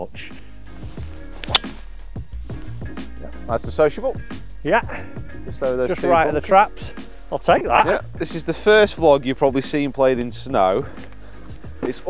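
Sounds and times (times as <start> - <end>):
background music: 0.0 - 12.0
golf club striking ball: 1.4 - 2.0.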